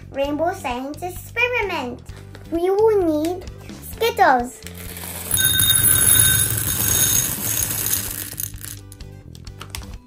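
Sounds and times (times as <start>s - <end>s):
hard candies rattling into glass bowl: 4.7s - 9.1s
glass bowl ringing: 5.0s - 8.8s.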